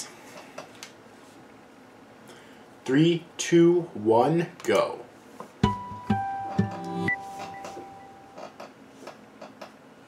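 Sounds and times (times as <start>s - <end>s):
plucked jingle note ringing: 5.6s - 8.5s.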